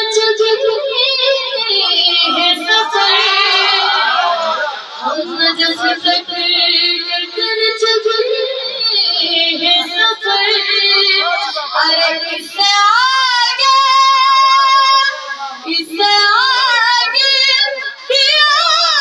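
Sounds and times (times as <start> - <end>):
boy singing devotional song: 0.0 - 19.0.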